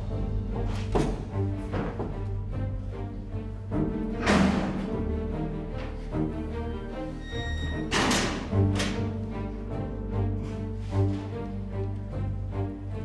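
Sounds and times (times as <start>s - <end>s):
dramatic background score: 0.0s - 13.0s.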